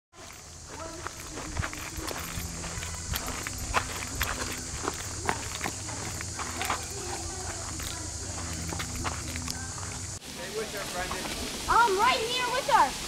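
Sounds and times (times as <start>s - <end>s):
footsteps on dirt trail: 0.1s - 10.2s, 10.8s - 12.2s
steady high hiss: 0.2s - 13.0s.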